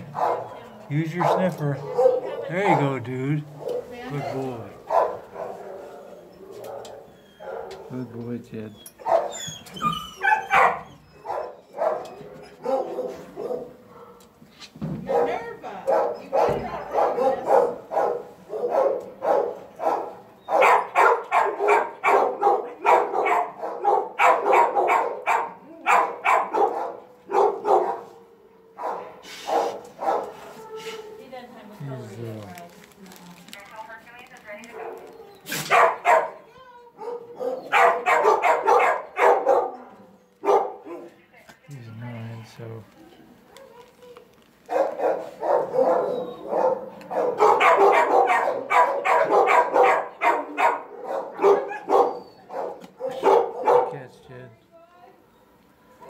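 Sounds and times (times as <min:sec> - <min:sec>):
dogs barking: 0:00.0 - 0:14.4, 0:15.0 - 0:31.0, 0:34.5 - 0:41.2, 0:44.6 - 0:54.2.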